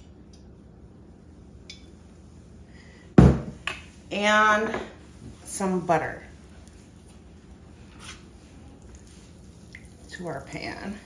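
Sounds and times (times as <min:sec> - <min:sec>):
glass bottle knocking on counter: 0:03.2 - 0:03.5.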